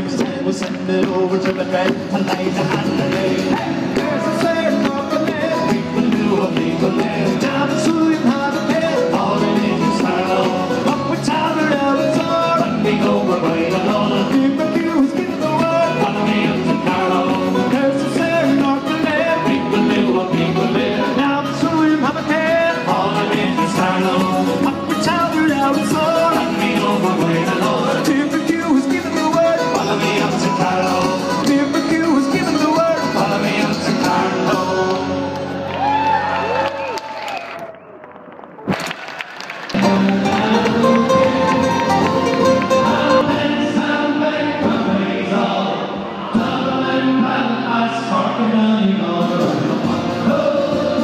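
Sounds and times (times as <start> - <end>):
drums: 0.0 - 36.2, 39.7 - 47.6, 48.2 - 51.0
acoustic guitars: 0.0 - 36.6, 39.7 - 51.0
bass guitar: 0.0 - 36.9, 39.7 - 51.0.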